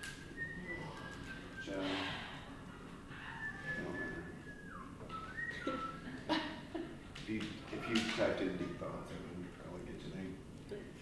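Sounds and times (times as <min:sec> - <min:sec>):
person whistling: 0:00.0 - 0:06.2.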